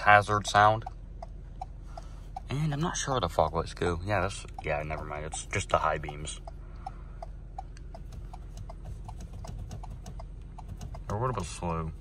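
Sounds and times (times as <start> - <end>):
hazard light flasher ticking: 0.0 - 11.8
car engine idling hum: 0.0 - 12.0.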